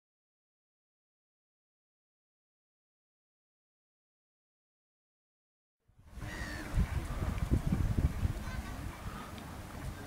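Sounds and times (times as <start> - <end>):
wind buffeting microphone: 6.0 - 10.0.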